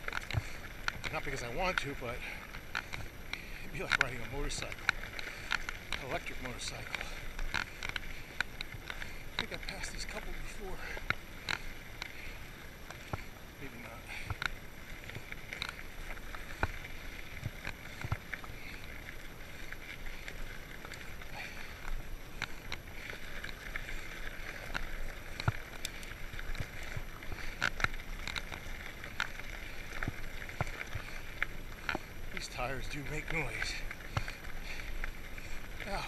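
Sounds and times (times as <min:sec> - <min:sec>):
bike tyres rolling on dirt: 0:00.0 - 0:36.0.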